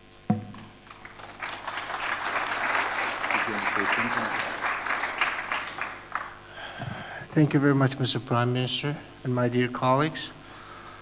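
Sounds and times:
audience applauding: 0.8s - 6.6s.

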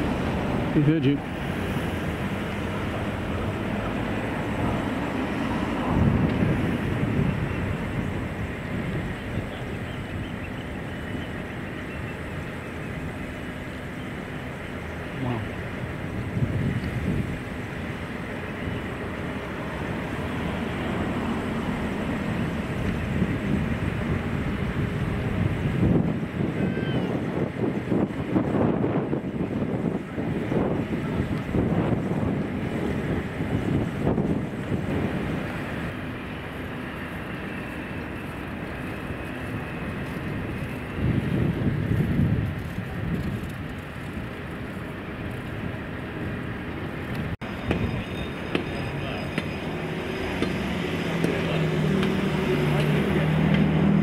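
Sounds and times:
engine rumble: 0.0s - 54.0s
wind buffeting microphone: 0.0s - 54.0s.

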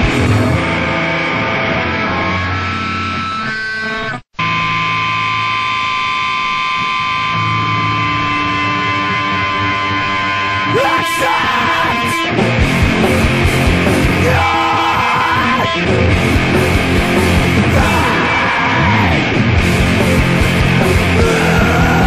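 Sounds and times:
distorted electric guitar chords: 0.0s - 22.0s
person yelling vocals: 10.7s - 12.3s, 14.0s - 15.9s, 17.5s - 19.3s, 21.0s - 22.0s.

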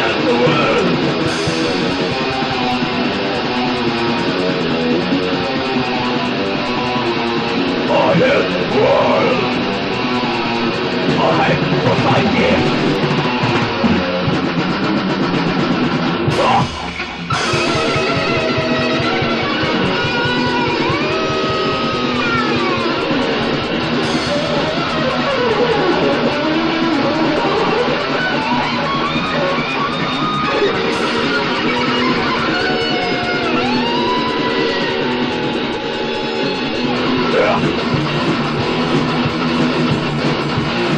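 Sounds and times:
bent guitar lead note: 0.0s - 14.6s, 16.3s - 40.9s
distorted electric guitars: 0.0s - 40.9s
drum kit playing fast: 0.0s - 40.9s.

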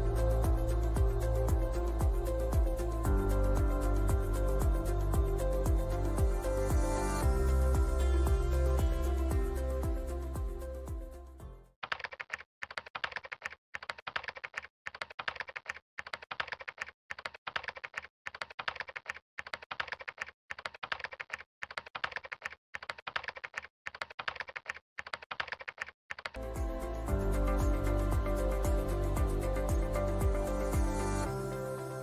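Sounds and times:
background music: 0.0s - 11.7s, 26.4s - 32.0s
rapid keyboard key clicks: 11.8s - 26.4s.

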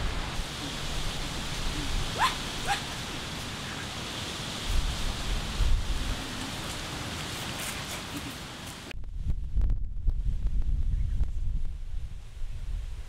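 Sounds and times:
steady outdoor hiss: 0.0s - 13.0s.

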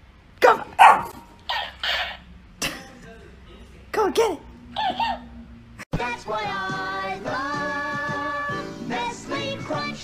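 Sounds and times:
dog barking: 0.4s - 1.7s, 4.8s - 5.3s.

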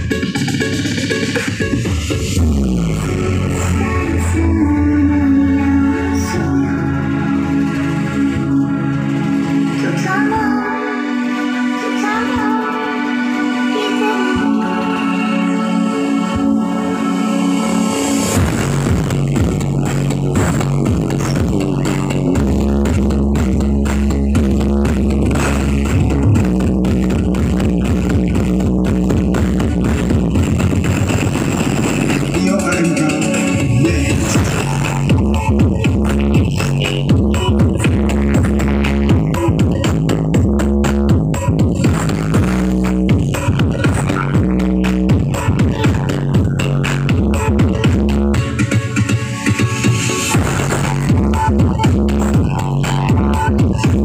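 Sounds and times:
loud bass-heavy electronic music: 0.0s - 54.0s
deep sustained bass: 1.7s - 11.8s, 13.0s - 48.4s, 50.3s - 54.0s.

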